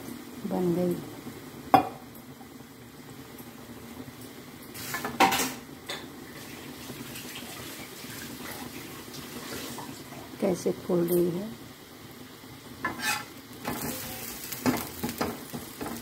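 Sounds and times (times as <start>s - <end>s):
food sizzling in hot oil: 0.0s - 16.0s.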